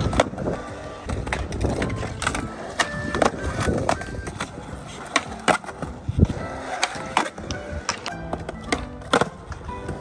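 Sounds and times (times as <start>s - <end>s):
skateboard clacking and landing: 0.0s - 10.0s
skateboard wheels rolling on concrete: 0.0s - 10.0s
background music: 4.7s - 10.0s.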